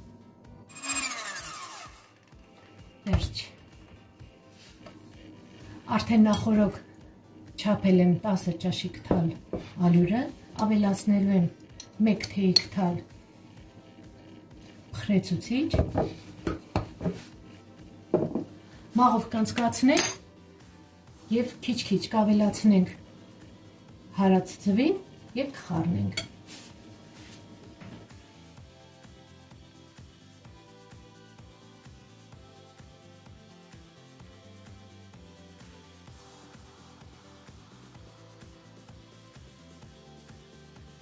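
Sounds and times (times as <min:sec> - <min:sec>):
soft background music: 0:00.0 - 0:41.0
hand mixer motor spinning down: 0:00.7 - 0:02.3
metal spoon clinking on glass: 0:20.0 - 0:20.2.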